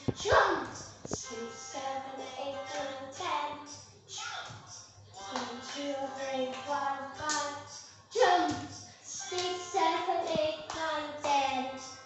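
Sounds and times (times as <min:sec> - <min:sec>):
child singing: 0:00.0 - 0:12.0
backing music: 0:05.0 - 0:12.0
hand claps: 0:05.3 - 0:05.8, 0:06.5 - 0:07.6, 0:09.3 - 0:09.6, 0:10.2 - 0:11.4.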